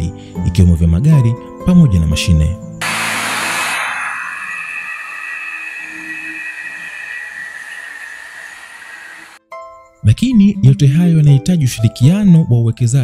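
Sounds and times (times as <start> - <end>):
machinery high whine: 2.8 - 9.4
machinery loud hiss: 2.8 - 9.4.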